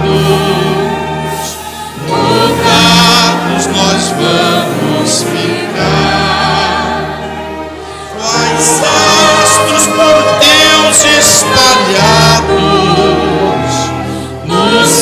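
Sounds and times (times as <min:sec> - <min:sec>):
congregation singing a hymn: 0:00.0 - 0:15.0
orchestral accompaniment: 0:00.0 - 0:15.0.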